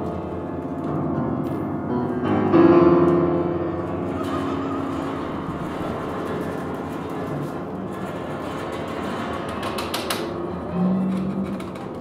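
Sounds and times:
grainy rumbling texture: 3.8 - 12.0.

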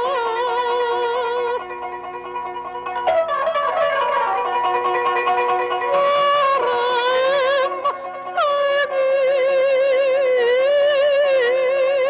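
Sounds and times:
plucked zither notes: 0.0 - 12.0.

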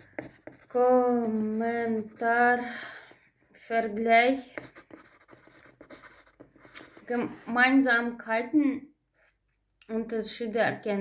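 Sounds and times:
ballpoint pen scratching on paper: 0.0 - 7.4.

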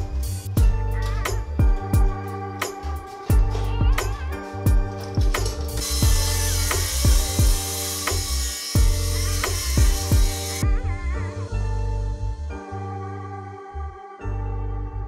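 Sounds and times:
background music with beat and bass: 0.0 - 13.0
circular saw cutting metal: 5.7 - 10.6.

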